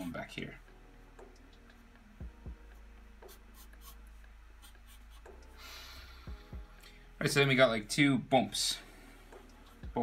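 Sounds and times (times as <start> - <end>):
marker scratching on paper: 3.2 - 5.4.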